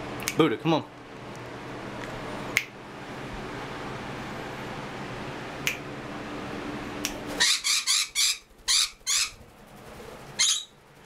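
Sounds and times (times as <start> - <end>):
parrot squawking harshly: 7.4 - 9.4, 10.4 - 10.8.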